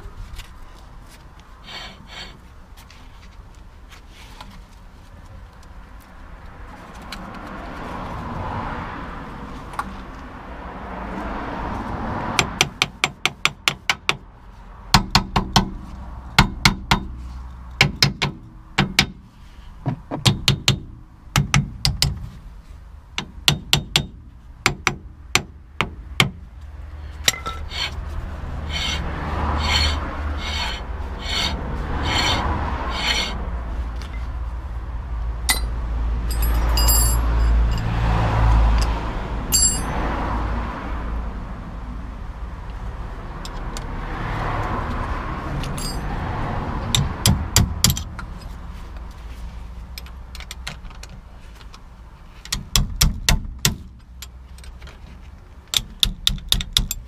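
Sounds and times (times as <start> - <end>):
metal rubbing and scraping: 1.6 - 2.5, 27.3 - 33.5, 45.7 - 46.1
low vehicle rumble: 14.2 - 57.0.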